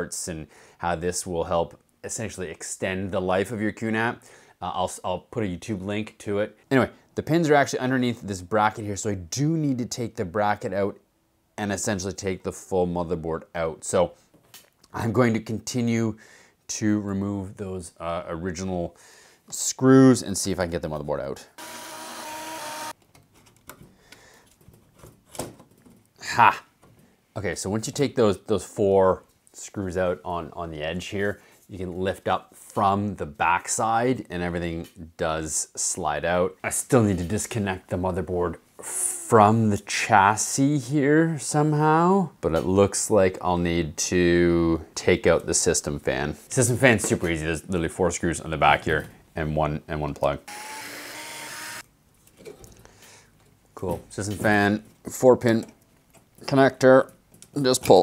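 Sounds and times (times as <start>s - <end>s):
electric screwdriver whine: 21.6s - 23.0s, 50.5s - 51.8s.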